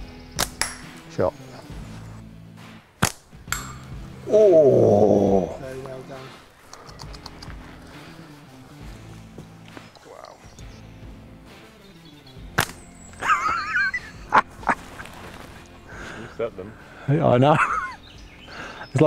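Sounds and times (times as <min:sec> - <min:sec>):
faint background music: 0:00.0 - 0:19.0
slingshot snap: 0:00.4 - 0:01.0, 0:03.0 - 0:03.9, 0:12.5 - 0:12.9.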